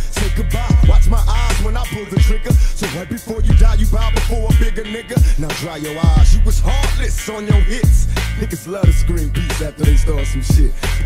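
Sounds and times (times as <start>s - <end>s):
heavy bass: 0.0s - 11.0s
rapping over a beat: 0.0s - 11.0s.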